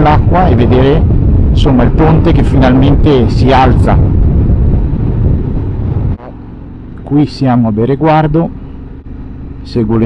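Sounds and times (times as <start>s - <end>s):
wind rumble on microphone: 0.0s - 7.2s.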